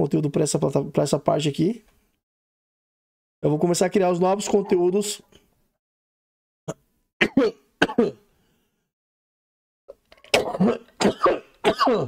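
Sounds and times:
man coughing: 7.2 - 8.2, 10.4 - 12.0.

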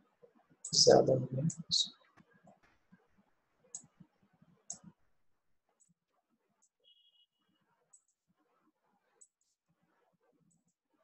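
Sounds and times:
computer mouse clicks: 4.7 - 5.0.

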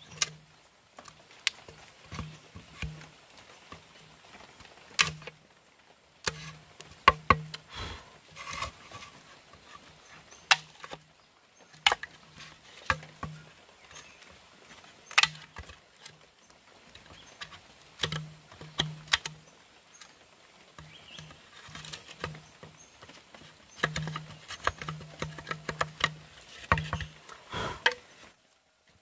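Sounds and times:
scraping and tapping: 1.0 - 5.4, 6.2 - 28.4
machete chopping bamboo: 1.4 - 3.2, 4.9 - 5.4, 6.2 - 8.7, 10.4 - 11.0, 12.8 - 13.4, 15.0 - 15.8, 18.0 - 19.4, 23.7 - 28.1.

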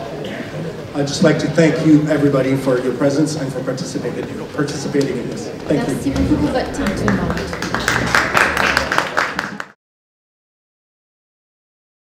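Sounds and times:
audience applauding: 5.0 - 9.8.

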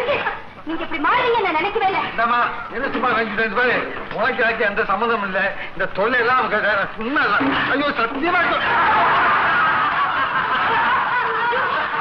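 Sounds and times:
group of people laughing: 7.4 - 12.0.

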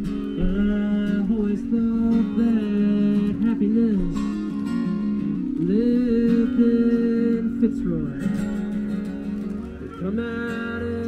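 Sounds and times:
person singing: 0.0 - 4.5, 5.6 - 8.7, 9.8 - 11.0
acoustic guitar chords: 0.0 - 11.0.

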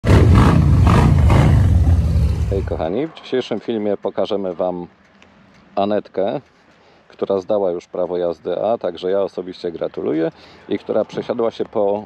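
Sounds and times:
loud deep surging roar: 0.0 - 2.9.

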